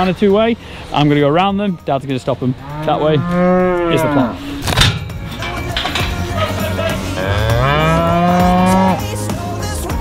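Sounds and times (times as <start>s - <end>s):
cow mooing: 2.6s - 4.6s, 6.4s - 9.2s.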